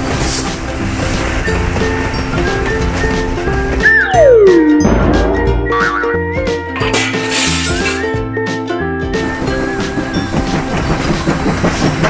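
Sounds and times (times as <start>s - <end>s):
toy train rattling on plastic track: 9.4s - 12.0s.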